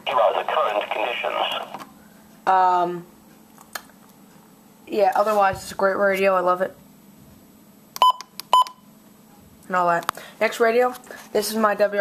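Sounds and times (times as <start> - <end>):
electronic key-press beeps: 8.0 - 8.8.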